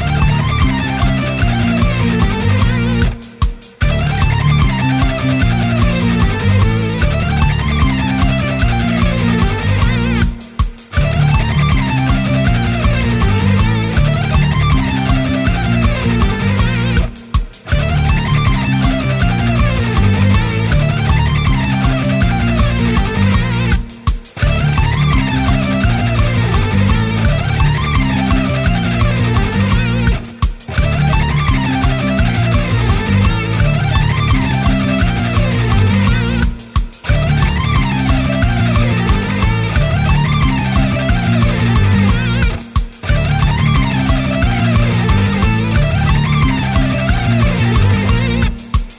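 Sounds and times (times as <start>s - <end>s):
backing track: 0.0s - 48.9s
fast electric guitar lick: 0.0s - 48.9s.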